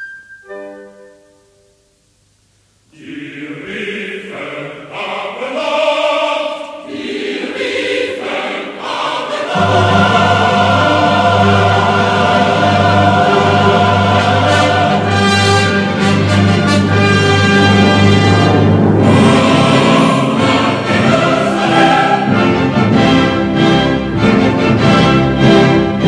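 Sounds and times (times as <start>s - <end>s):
choir singing with orchestra: 2.9s - 26.0s.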